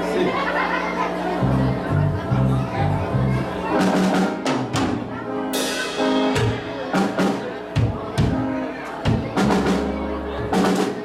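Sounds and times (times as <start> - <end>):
accordion chords: 0.0 - 11.0
drum kit strikes: 3.8 - 11.0.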